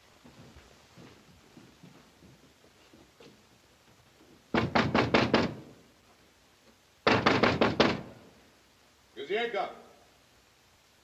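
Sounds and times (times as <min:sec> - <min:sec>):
fist knocking on door: 0:04.5 - 0:05.6, 0:07.0 - 0:08.1.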